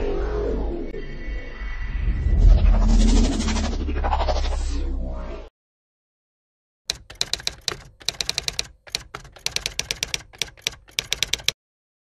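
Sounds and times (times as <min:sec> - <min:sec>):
typewriter keys clacking: 0:06.9 - 0:11.6.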